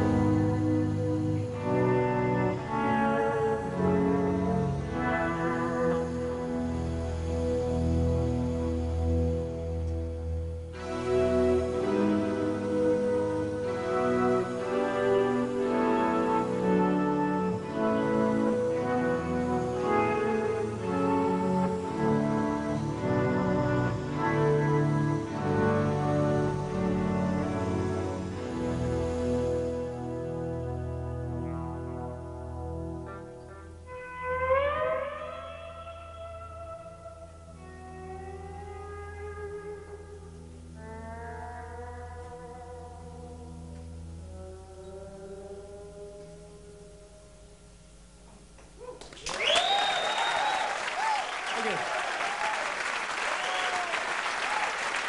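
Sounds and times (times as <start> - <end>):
electric guitar sustained chords: 0.0 - 55.0.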